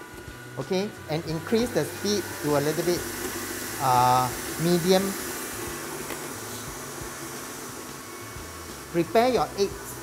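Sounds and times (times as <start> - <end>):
electric stand mixer running: 0.0 - 10.0.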